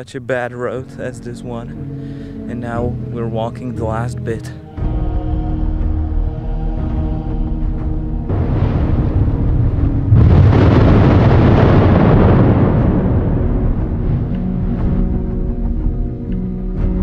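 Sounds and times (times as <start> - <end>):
dark cinematic music: 0.4 - 17.0
deep boom rumbling: 4.8 - 17.0.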